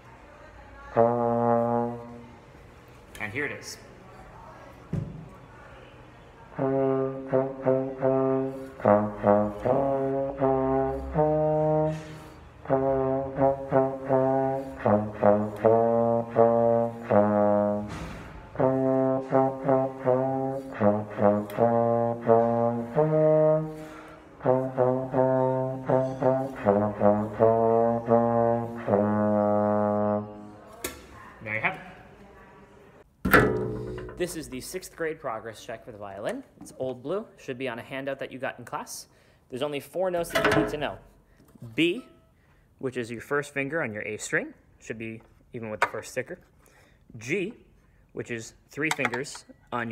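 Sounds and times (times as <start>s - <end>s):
slide trombone playing: 0.9s - 2.4s, 6.5s - 30.6s.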